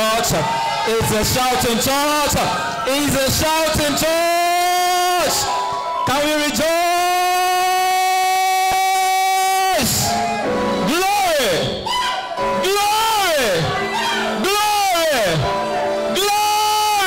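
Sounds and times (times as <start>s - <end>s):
man shouting into a microphone: 0.0s - 17.0s.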